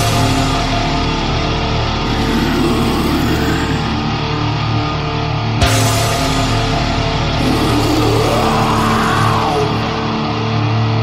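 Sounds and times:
distorted metal guitar and bass: 0.0s - 11.0s.

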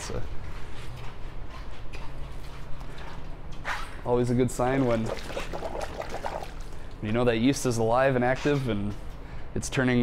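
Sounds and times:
gurgling bubbles in liquid: 5.0s - 6.6s.

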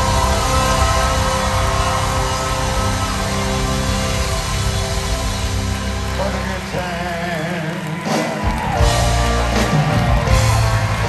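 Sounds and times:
live band holding long chords: 0.0s - 11.0s.

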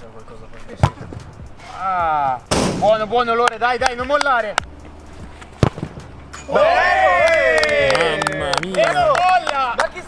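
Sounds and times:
football kicked thud: 0.8s - 1.3s, 5.6s - 6.2s.

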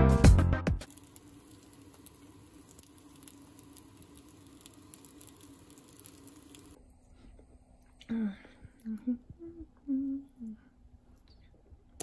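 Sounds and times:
dumplings sizzling in a pan: 0.8s - 6.8s
low steady hum: 0.8s - 12.0s.

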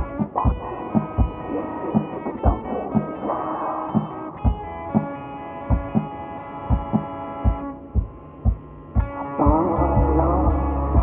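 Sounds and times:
slow deep drum beat: 0.0s - 3.2s, 4.0s - 5.1s, 5.7s - 6.1s, 6.7s - 11.0s.

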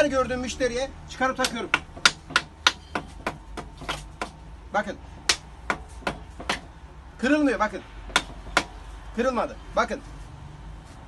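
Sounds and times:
sharp taps on glass: 1.4s - 4.4s.

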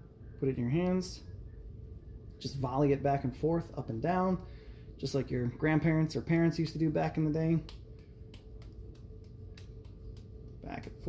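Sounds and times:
soft pats of meat mixture: 6.9s - 11.0s.

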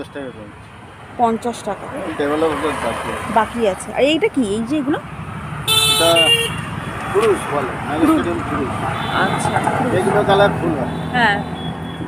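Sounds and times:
road traffic hum: 0.0s - 12.0s
vehicle horn honking: 5.6s - 7.3s, 8.9s - 9.7s.

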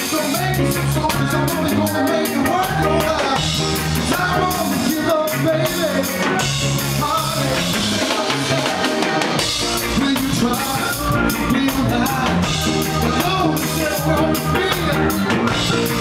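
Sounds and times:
man singing into a microphone: 0.0s - 16.0s
reggae band playing: 0.0s - 16.0s.

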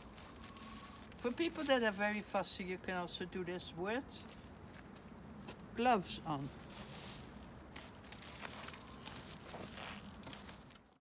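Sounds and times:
hands rubbing wet fleece on bubble wrap: 0.0s - 2.4s, 6.4s - 10.7s.

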